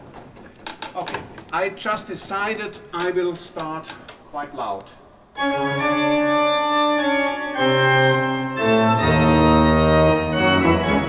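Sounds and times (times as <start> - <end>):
deep organ pedal bass: 5.4 - 11.0
pipe organ chords: 5.4 - 11.0.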